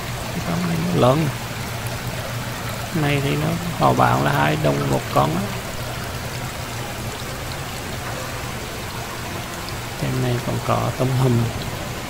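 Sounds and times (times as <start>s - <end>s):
water splashing and trickling: 0.0s - 12.0s.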